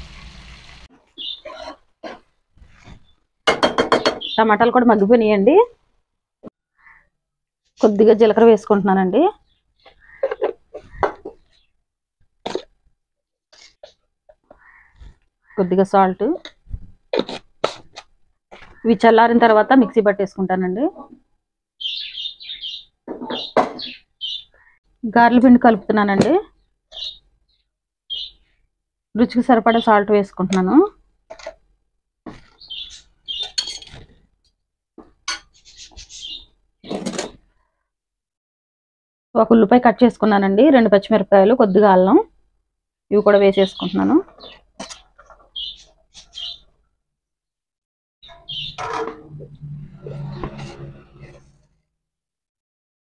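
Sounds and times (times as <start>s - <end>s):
small bird chirping: 1.2s - 1.5s, 4.0s - 4.5s, 21.8s - 24.8s, 26.9s - 28.5s, 32.5s - 33.8s, 35.6s - 36.6s, 43.6s - 46.7s, 48.2s - 48.8s.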